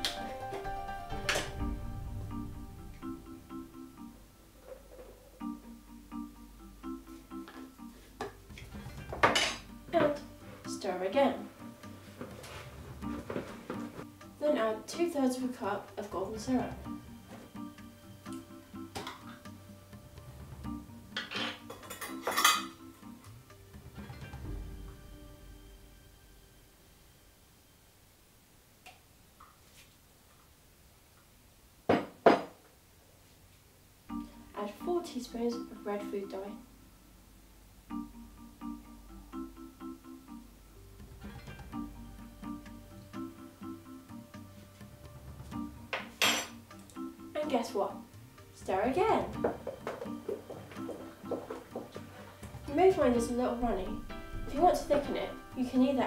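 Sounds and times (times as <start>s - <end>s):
background music: 0.0s - 27.7s, 34.0s - 56.0s.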